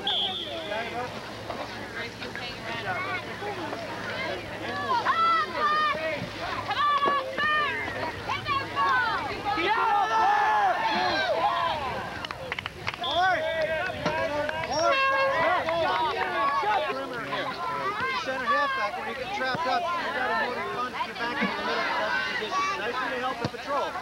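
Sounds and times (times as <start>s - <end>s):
people shouting and calling: 4.2s - 12.2s, 13.0s - 24.0s.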